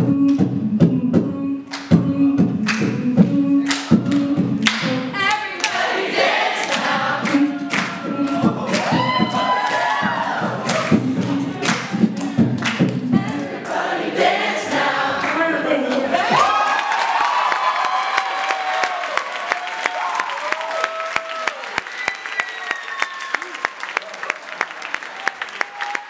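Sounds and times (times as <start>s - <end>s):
beatboxing kick and snare: 0.0s - 5.2s, 6.8s - 13.5s
voices singing a tune: 0.0s - 16.4s.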